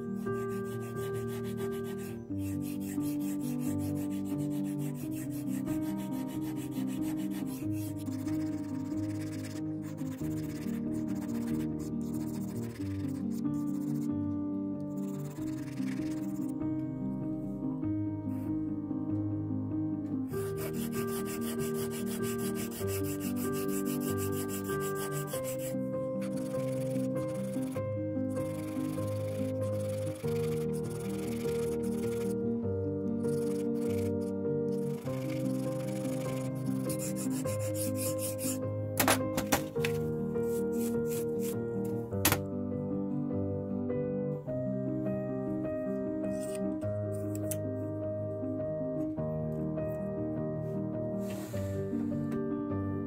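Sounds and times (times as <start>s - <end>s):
background music with sustained chords: 0.0s - 53.0s
sanding rubbing strokes: 0.4s - 14.0s, 20.5s - 27.8s, 34.9s - 38.6s
hand file scraping wood and metal: 0.5s - 9.2s, 20.5s - 27.7s, 33.3s - 38.6s.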